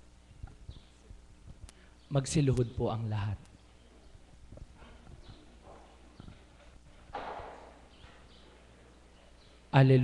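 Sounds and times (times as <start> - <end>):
faint knocks and shuffling: 3.4 - 9.6.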